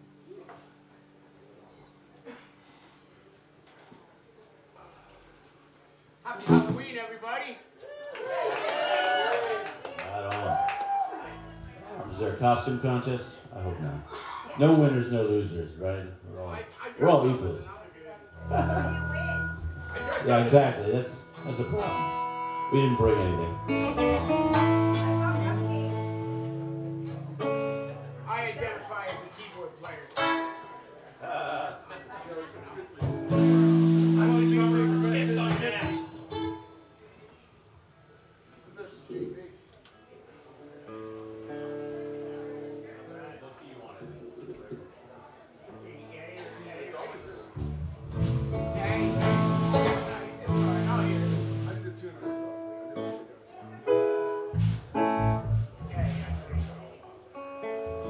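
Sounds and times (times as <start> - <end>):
plucked guitar notes: 6.4 - 6.9, 11.4 - 13.8, 18.2 - 31.0, 33.0 - 36.8, 47.6 - 53.2, 53.9 - 58.0
loud low held note: 18.2 - 28.2, 47.8 - 52.0.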